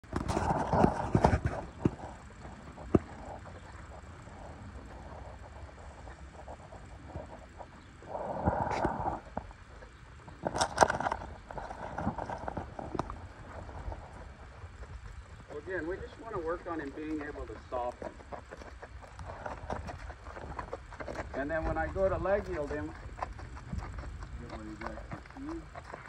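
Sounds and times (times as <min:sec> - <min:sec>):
rushes of noise: 0:00.0 - 0:09.7
horse hoofbeats in sand: 0:00.0 - 0:26.0.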